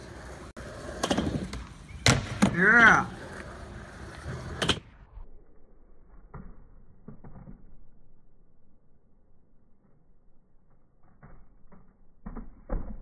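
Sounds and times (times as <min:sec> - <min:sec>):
skateboard wheels rolling: 0:00.0 - 0:05.1.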